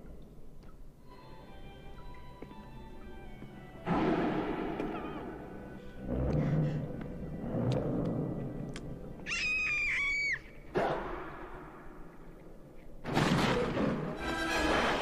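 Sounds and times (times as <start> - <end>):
orchestral film score: 1.0 - 12.4, 13.0 - 15.0
sudden loud hit: 3.9 - 5.0
high-pitched squealing cry: 9.3 - 10.5.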